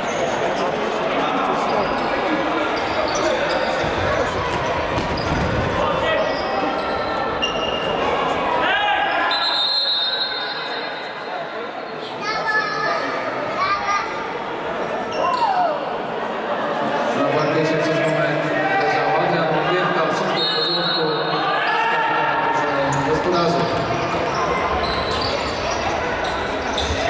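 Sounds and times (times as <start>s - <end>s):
whistle blast: 9.3s - 10.9s, 20.4s - 21.2s.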